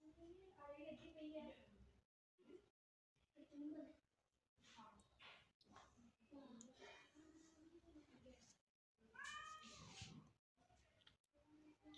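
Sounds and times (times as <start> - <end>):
cat meowing: 9.2 - 10.0.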